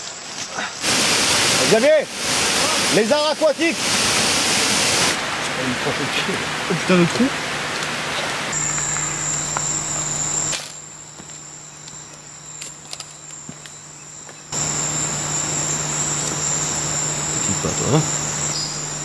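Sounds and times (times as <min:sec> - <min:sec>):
insects trilling: 0:08.5 - 0:19.0
low hum: 0:08.6 - 0:19.0.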